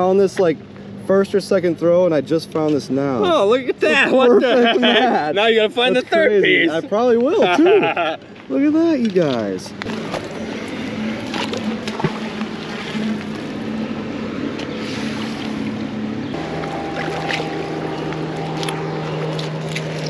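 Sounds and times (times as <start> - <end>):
motorboat engine running: 3.3 - 20.0.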